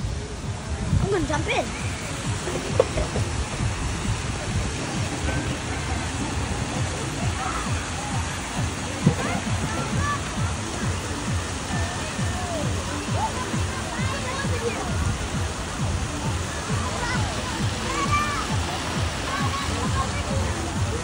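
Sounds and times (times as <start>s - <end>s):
background music: 0.0s - 21.0s
rushing water: 0.0s - 21.0s
water splashing: 0.0s - 21.0s.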